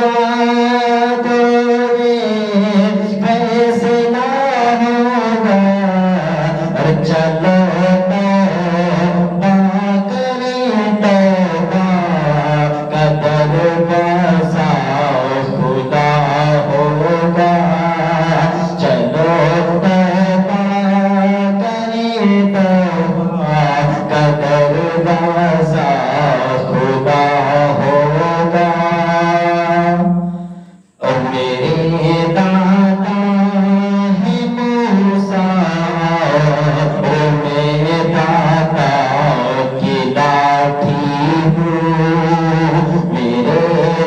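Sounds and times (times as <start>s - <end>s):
man singing: 0.0s - 44.0s.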